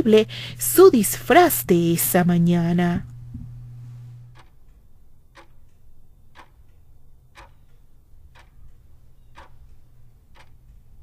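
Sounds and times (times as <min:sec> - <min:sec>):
clock ticking: 0:00.0 - 0:03.2, 0:04.2 - 0:11.0.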